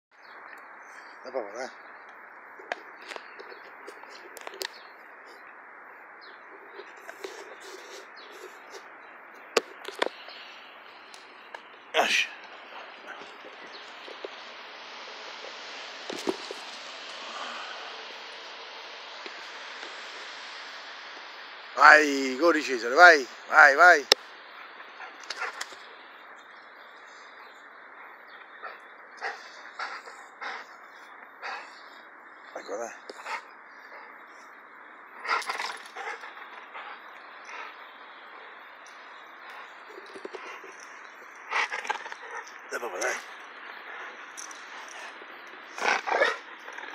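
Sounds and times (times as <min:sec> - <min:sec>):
outdoor hiss: 0:00.2 - 0:46.9
dog breathing hard in huffs: 0:28.6 - 0:32.1.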